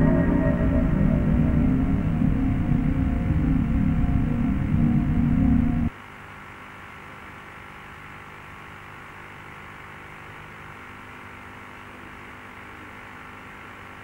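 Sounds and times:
music: 0.0 - 5.9
faint low hum: 0.0 - 6.4.

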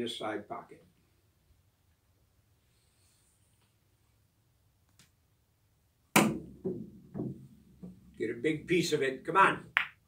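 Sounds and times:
ball knocking off cushions: 6.2 - 8.0
pool cue striking ball: 6.2 - 8.1.

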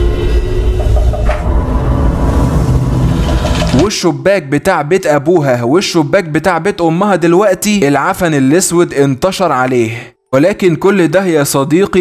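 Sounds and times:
deep steady rumble: 0.0 - 3.8
sustained ominous tones: 0.0 - 3.9
man narrating: 3.7 - 12.0.

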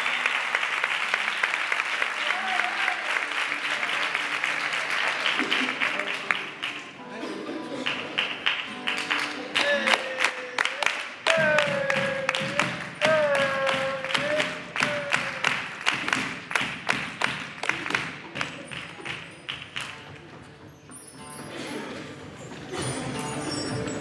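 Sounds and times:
percussion strokes: 8.6 - 24.0.

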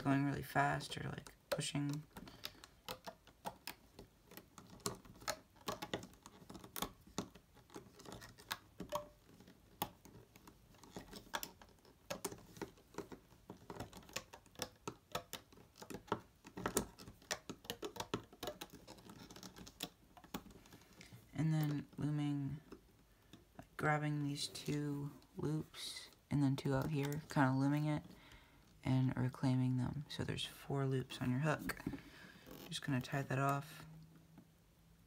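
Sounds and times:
plastic hook clicking on pegs: 0.9 - 21.9.

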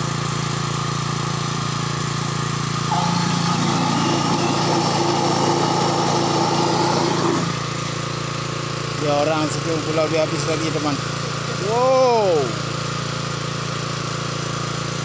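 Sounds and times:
water pump engine running: 0.0 - 15.0
higher hum: 2.7 - 7.8.

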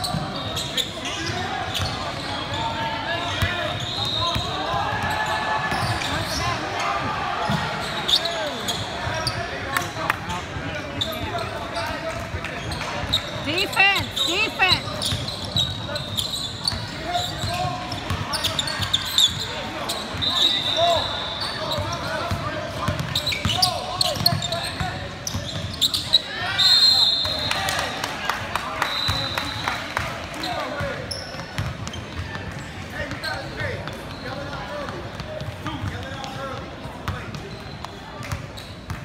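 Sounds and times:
voices in a hall: 0.0 - 39.0.

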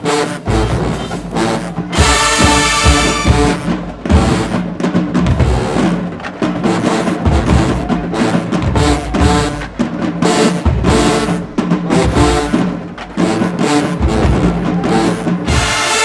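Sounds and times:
drumline: 0.0 - 16.0
marching band brass and sousaphones: 0.0 - 16.0.

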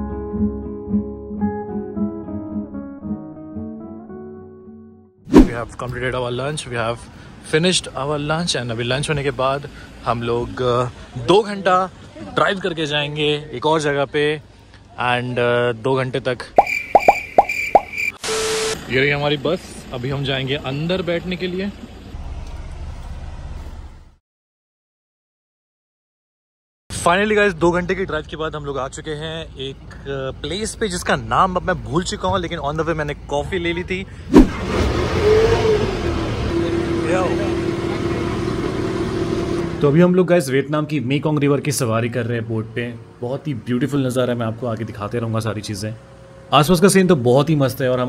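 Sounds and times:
even rushing noise: 5.3 - 5.7, 34.3 - 34.7
cartoon bloop pops: 16.6 - 18.1
thin high steady tone: 16.6 - 18.8.

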